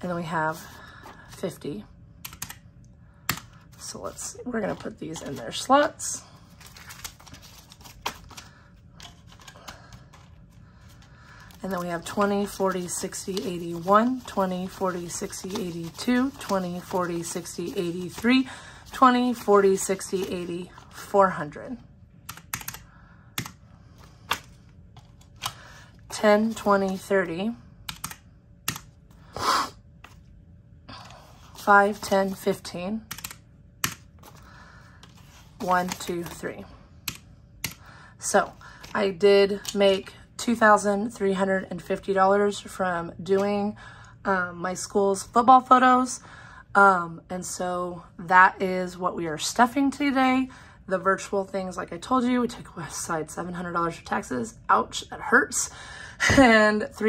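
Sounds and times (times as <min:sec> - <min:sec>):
calculator keys clicking: 0:02.2 - 0:02.6, 0:22.3 - 0:23.6, 0:27.9 - 0:28.9, 0:33.1 - 0:34.0
paper banknotes rustling: 0:03.5 - 0:21.0, 0:34.0 - 0:36.4.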